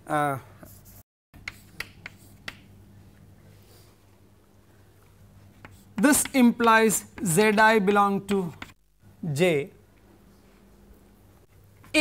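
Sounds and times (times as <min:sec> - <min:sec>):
faint electrical hum: 0:00.0 - 0:12.0
chalk clicking on blackboard: 0:01.4 - 0:02.7, 0:05.6 - 0:07.6, 0:08.4 - 0:08.8.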